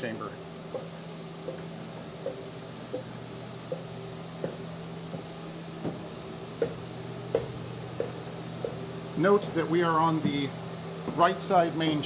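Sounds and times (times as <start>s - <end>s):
steady low hum: 0.0s - 12.0s
footsteps on wooden stairs: 4.4s - 8.8s.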